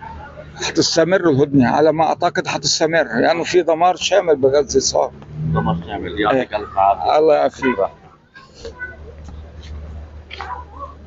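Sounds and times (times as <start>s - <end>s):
scattered voices: 0.0s - 11.0s.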